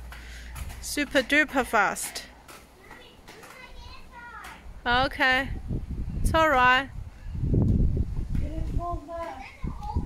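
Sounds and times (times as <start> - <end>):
children's voices calling out: 2.1 - 4.7, 8.4 - 10.0.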